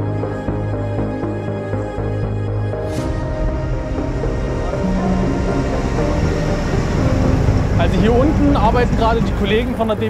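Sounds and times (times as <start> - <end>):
background music: 0.0 - 10.0
excavator engine rumble: 3.2 - 10.0.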